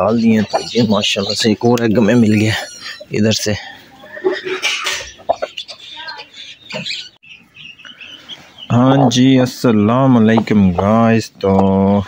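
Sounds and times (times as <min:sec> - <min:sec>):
chickens calling and clucking: 0:00.0 - 0:12.0
faint scattered noises: 0:00.0 - 0:12.0.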